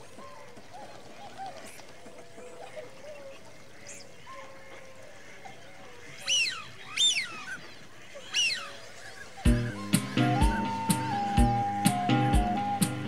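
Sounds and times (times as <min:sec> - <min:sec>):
loud bird calls sweeping down: 0:06.2 - 0:13.0.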